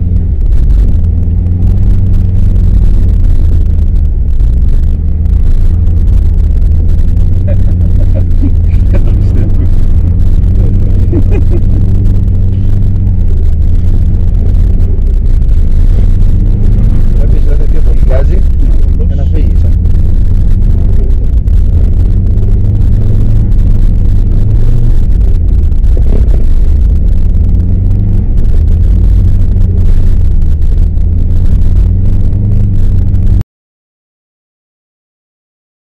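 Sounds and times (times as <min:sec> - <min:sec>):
car engine under load: 0:00.0 - 0:33.4.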